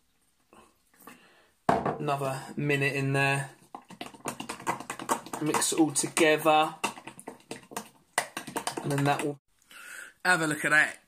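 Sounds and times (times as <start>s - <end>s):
utensil tapping glass bowl: 3.8s - 9.4s
man talking: 5.4s - 6.8s, 8.8s - 9.4s, 10.2s - 11.0s.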